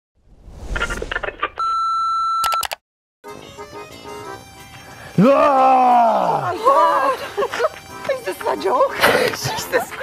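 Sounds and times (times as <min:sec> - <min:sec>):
rising whoosh: 0:00.2 - 0:01.4.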